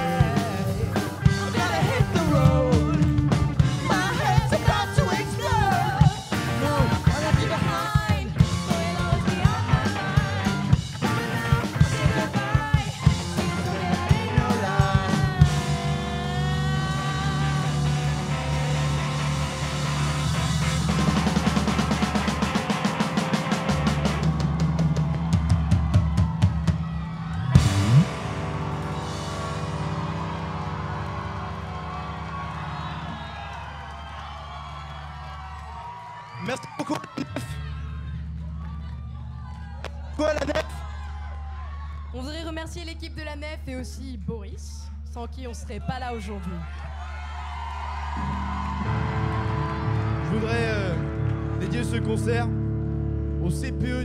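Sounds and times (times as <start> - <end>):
rock band playing: 0.0 - 34.9, 48.1 - 54.0.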